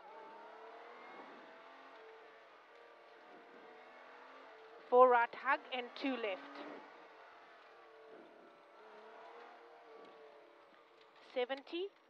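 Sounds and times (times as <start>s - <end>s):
car engine from inside cabin: 0.0s - 11.6s.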